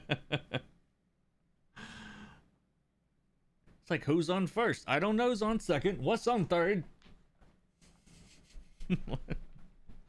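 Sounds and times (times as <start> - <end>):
man sighing: 1.7 - 2.5.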